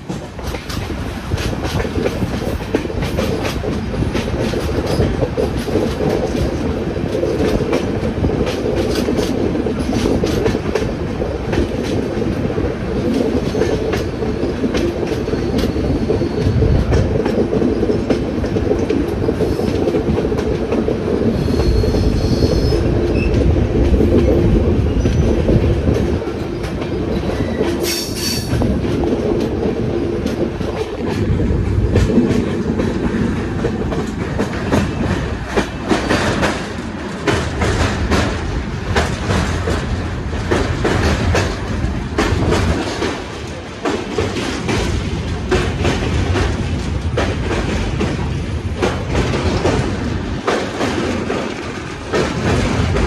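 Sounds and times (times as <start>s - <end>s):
train wheels rumbling on rail: 0.0s - 53.0s.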